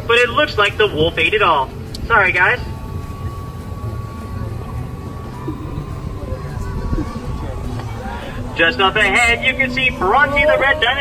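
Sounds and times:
boat motor humming: 0.0 - 11.0
faint high whine: 0.0 - 11.0.

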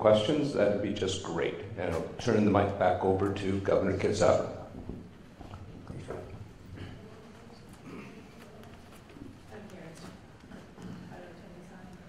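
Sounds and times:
faint indistinct voices: 4.6 - 12.0.

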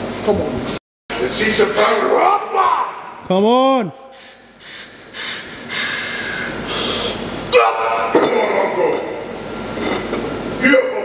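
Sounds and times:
man breathing hard and straining: 4.1 - 7.4.

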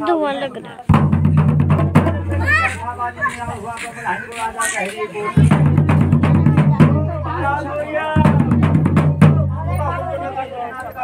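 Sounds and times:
people's voices: 0.0 - 11.0
drum beaten in rapid strokes: 0.9 - 9.6.

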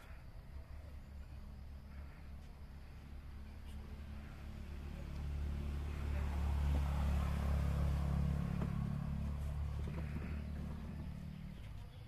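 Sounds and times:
passing motor vehicle rumble: 0.0 - 12.0.

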